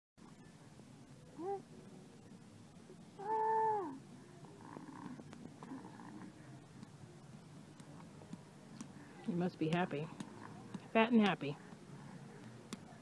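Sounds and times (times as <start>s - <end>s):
baby cooing: 1.4s - 1.7s, 3.2s - 4.0s.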